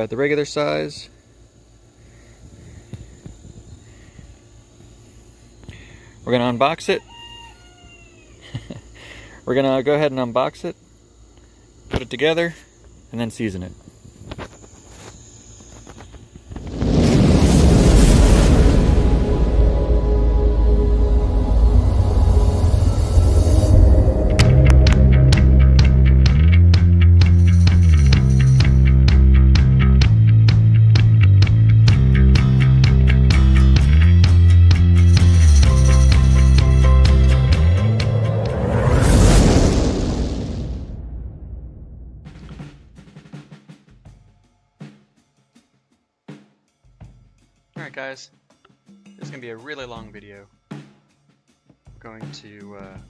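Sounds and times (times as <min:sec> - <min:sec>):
low boom: 0:16.5 - 0:43.0
cinematic whoosh rumble: 0:16.6 - 0:28.9, 0:35.1 - 0:43.0
soundtrack music: 0:18.3 - 0:27.9, 0:32.0 - 0:39.6
quick drum hits: 0:42.1 - 0:45.0.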